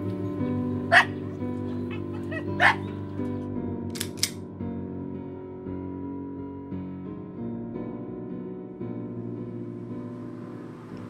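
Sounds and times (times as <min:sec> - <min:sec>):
dog barking: 0:00.9 - 0:01.2, 0:01.9 - 0:03.0.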